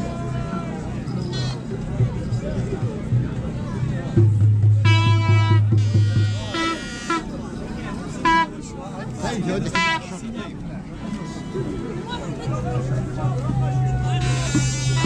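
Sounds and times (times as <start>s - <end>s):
toy trumpet toots: 4.9s - 7.3s, 14.2s - 15.0s.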